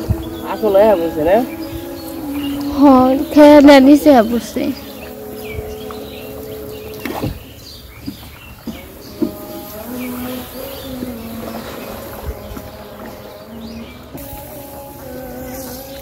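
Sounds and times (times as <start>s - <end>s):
slow melody of long held notes: 0.0s - 7.9s, 8.6s - 16.0s
bird chirps: 0.0s - 14.4s.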